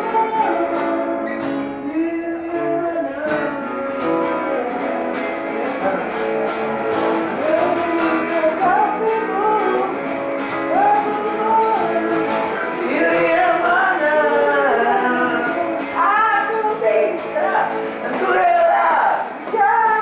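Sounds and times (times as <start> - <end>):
acoustic guitars strumming: 0.0 - 20.0
man singing: 0.0 - 20.0.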